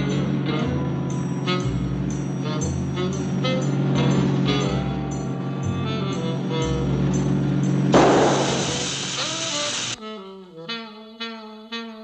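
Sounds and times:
loud rushing noise: 7.9s - 10.0s.

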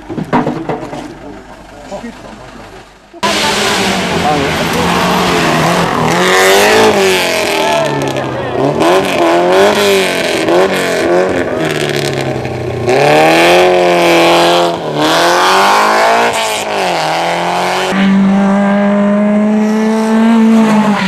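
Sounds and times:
rally car engine revving: 2.4s - 21.0s.

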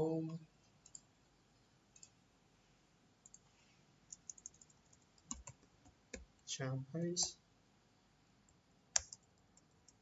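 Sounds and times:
computer keyboard typing: 0.8s - 1.0s, 4.1s - 6.3s, 9.0s - 10.0s.

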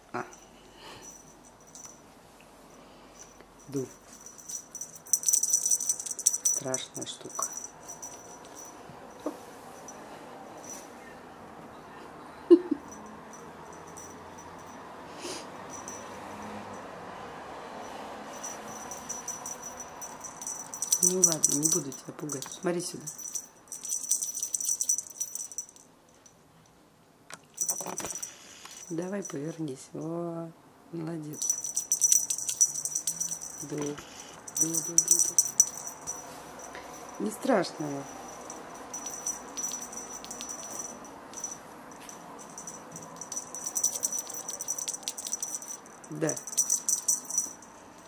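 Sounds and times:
cat toy rattling: 3.6s - 8.8s, 18.3s - 25.8s, 27.6s - 29.4s, 31.4s - 37.3s, 37.9s - 47.7s.

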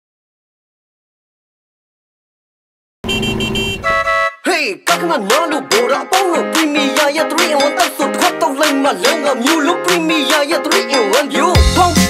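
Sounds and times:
horn beeping: 3.0s - 4.5s.

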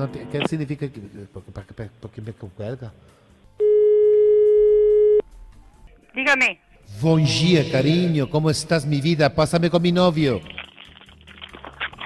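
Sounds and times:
telephone ringback tone: 3.6s - 5.2s.

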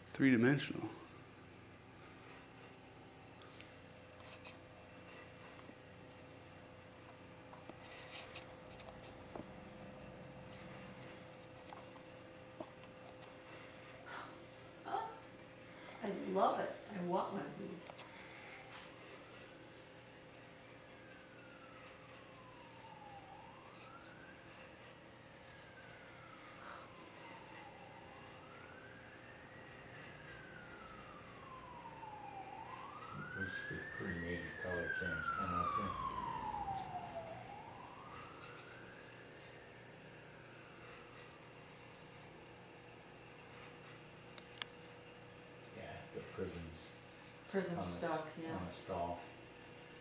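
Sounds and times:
faint steady hum: 0.0s - 50.0s
emergency siren wailing: 0.2s - 50.0s.

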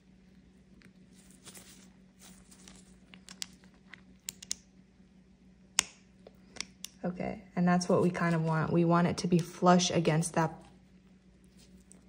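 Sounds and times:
faint steady hum: 0.0s - 12.0s
gloved hand rustling: 0.7s - 4.2s, 10.7s - 12.0s.

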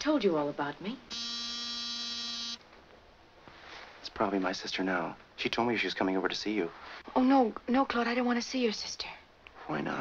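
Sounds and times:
door buzzer: 1.1s - 2.6s.

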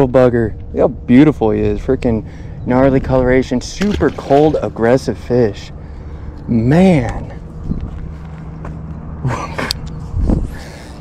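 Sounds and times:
sharp click: 3.8s - 4.7s.

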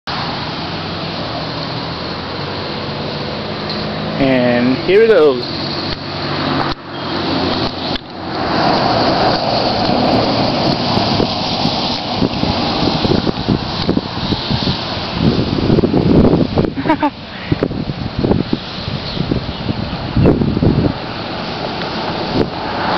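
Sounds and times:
road traffic: 0.0s - 22.9s
wind gusting on microphone: 0.1s - 22.9s.

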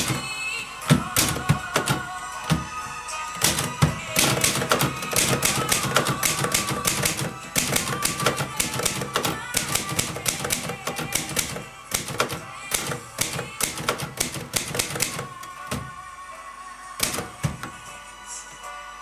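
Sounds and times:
typewriter keystrokes: 0.0s - 0.3s, 0.9s - 2.7s, 3.4s - 15.9s, 17.0s - 17.8s.

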